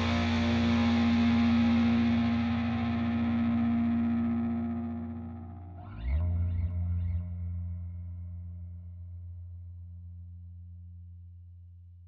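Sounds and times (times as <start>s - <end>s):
distorted electric guitar chord: 0.0s - 5.8s.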